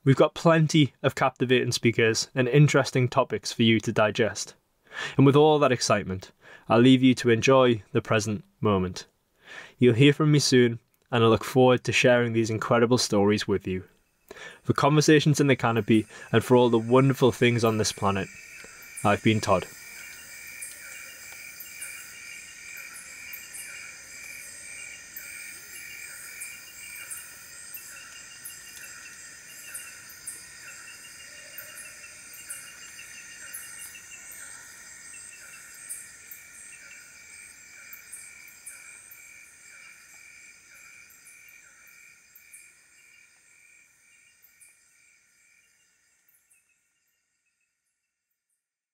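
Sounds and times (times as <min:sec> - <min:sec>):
insects trilling: 0:13.9 - 0:47.6
repeating insect chirp: 0:14.0 - 0:47.9.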